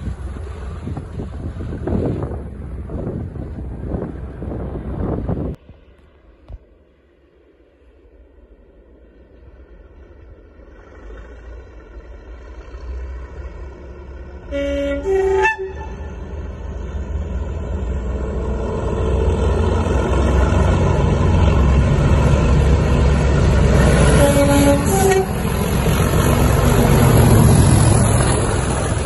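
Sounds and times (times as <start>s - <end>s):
diesel engine rumbling: 0.0s - 6.0s, 7.4s - 29.0s
two-tone locomotive horn: 14.4s - 16.6s, 23.8s - 25.8s.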